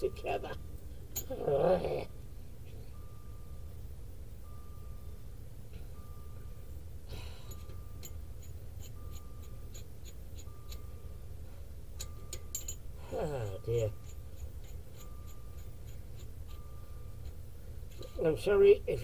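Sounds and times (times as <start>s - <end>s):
car warning chime: 0.0s - 1.0s, 2.8s - 8.3s, 10.4s - 14.0s, 16.6s - 19.0s.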